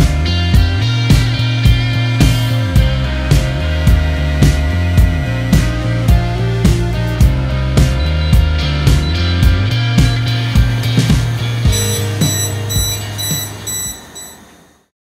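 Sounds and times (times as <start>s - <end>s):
rock music with drums and guitar: 0.0s - 14.1s
alarm high-pitched beeps: 8.0s - 9.4s, 11.7s - 14.6s.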